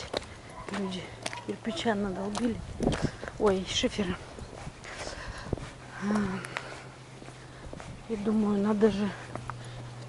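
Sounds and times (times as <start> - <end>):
footsteps on broken slate: 0.0 - 9.9.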